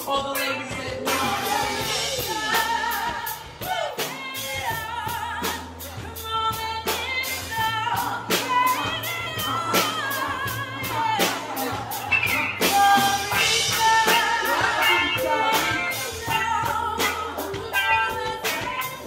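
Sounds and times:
steady drum beat: 0:00.0 - 0:19.0
sustained bass notes: 0:00.0 - 0:19.0
women singing: 0:00.0 - 0:19.0.

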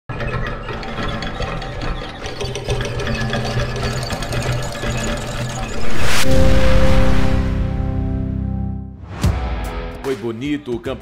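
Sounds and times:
rapid mechanical clatter: 0:00.1 - 0:05.7
steady low drone: 0:05.6 - 0:09.0
loud whoosh: 0:05.7 - 0:08.8
intro music: 0:05.7 - 0:09.9.

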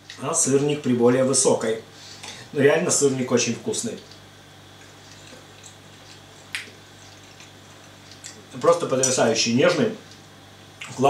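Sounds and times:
low steady hum: 0:00.0 - 0:11.0
person chewing: 0:04.7 - 0:08.5, 0:10.8 - 0:11.0
lip smack: 0:06.4 - 0:06.8.

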